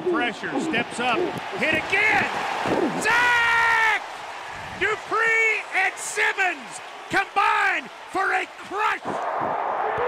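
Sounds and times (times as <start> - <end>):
man shouting excitedly: 3.0 - 4.0.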